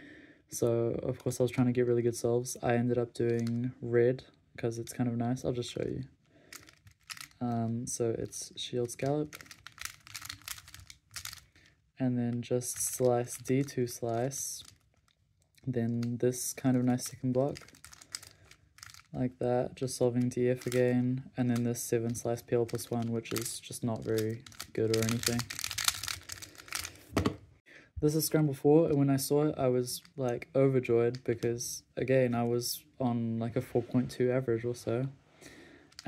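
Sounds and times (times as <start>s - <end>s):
plastic puzzle clicking and clacking: 6.5s - 7.4s, 8.9s - 11.6s, 16.8s - 19.1s, 20.6s - 20.9s, 21.8s - 27.3s.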